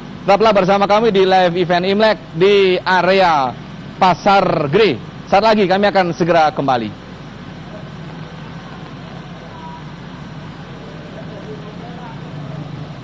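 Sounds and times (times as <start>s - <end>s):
faint distant voices: 0.0s - 13.0s
traffic hum: 0.0s - 13.0s.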